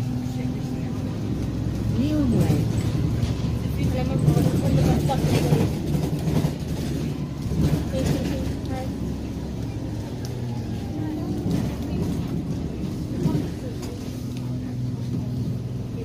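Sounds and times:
bus engine and road hum: 0:00.0 - 0:16.0
passengers talking: 0:00.0 - 0:16.0.

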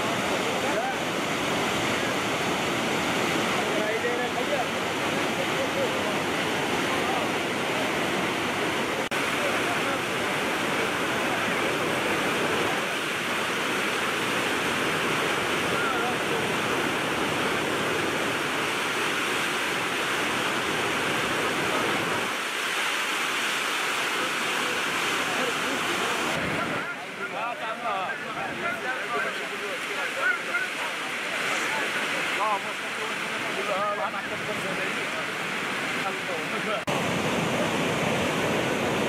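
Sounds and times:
floodwater rushing: 0:00.0 - 0:39.0.

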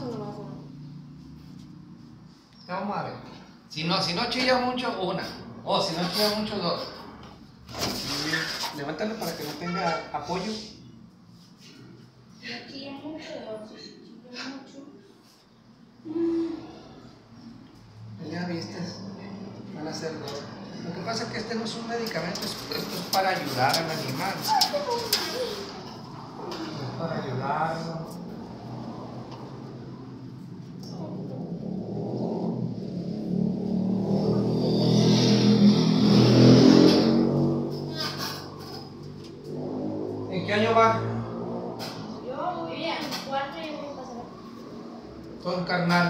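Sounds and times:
vehicle passing on street: 0:00.0 - 0:13.1, 0:15.2 - 0:46.0
dog whimpering: 0:24.4 - 0:25.9.

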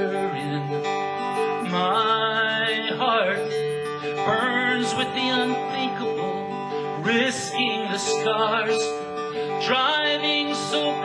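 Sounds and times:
sliding melody line: 0:00.0 - 0:08.0
country-folk song: 0:00.0 - 0:11.0
strummed acoustic guitar: 0:00.0 - 0:11.0.

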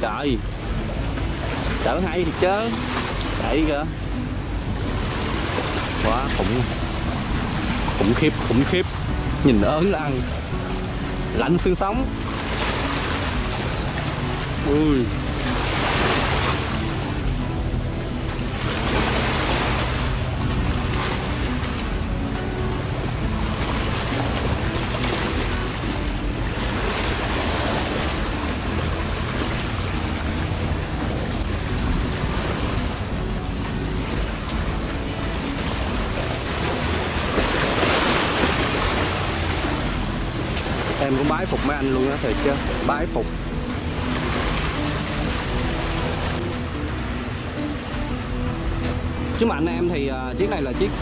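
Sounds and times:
boat engines humming: 0:00.0 - 0:51.0.

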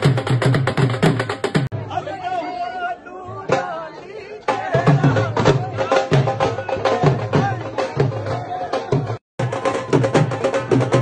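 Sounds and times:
rapid drumming: 0:00.0 - 0:01.8, 0:03.3 - 0:11.0
crowd chattering and calling out: 0:01.2 - 0:11.0.

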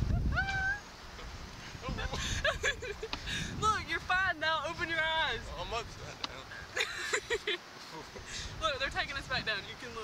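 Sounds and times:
wind rumble on microphone: 0:00.0 - 0:06.2, 0:08.3 - 0:10.0
person's high-pitched cry: 0:00.2 - 0:00.9.

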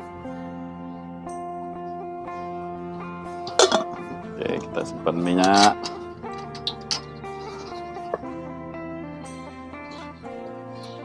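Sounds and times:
plucked guitar music: 0:00.0 - 0:11.0.

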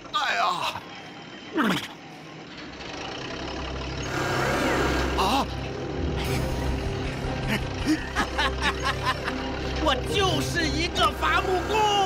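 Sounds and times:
truck engine rumbling: 0:00.0 - 0:12.0.

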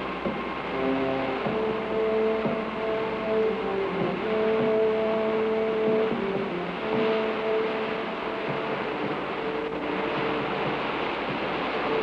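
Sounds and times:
breaking surf rushing: 0:00.0 - 0:12.0
faint background music: 0:00.0 - 0:12.0.

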